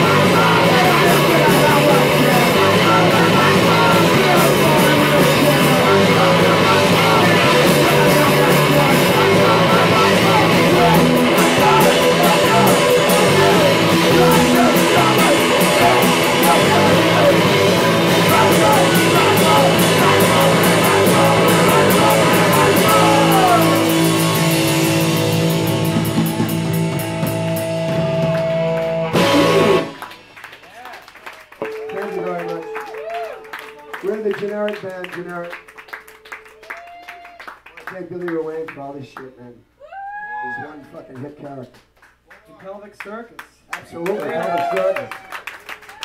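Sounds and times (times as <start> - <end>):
man singing: 0.0 - 24.8
live rock band playing: 0.0 - 30.6.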